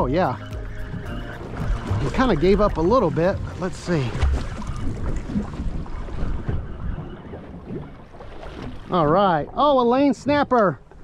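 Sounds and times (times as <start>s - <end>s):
wind rumbling on microphone: 0.0s - 9.6s
water sloshing against hull: 0.0s - 11.0s.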